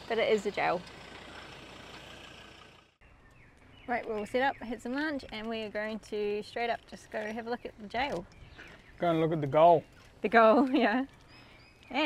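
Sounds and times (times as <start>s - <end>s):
vehicle engine idling: 0.0s - 3.0s.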